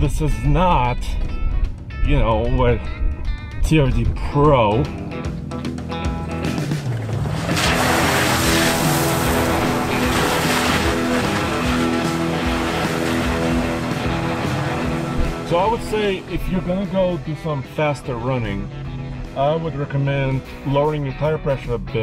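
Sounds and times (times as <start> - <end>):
background music: 0.0 - 22.0
truck engine under load: 6.3 - 16.2
tyres throwing gravel: 6.7 - 16.2.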